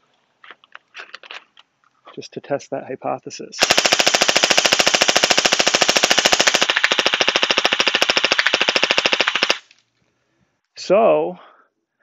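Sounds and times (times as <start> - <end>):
gel blaster firing full auto: 3.6 - 9.7.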